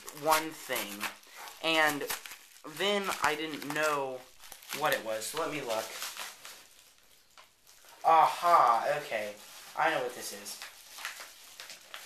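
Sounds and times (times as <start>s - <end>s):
paper mailer crinkling: 0.0s - 7.9s, 8.6s - 12.0s.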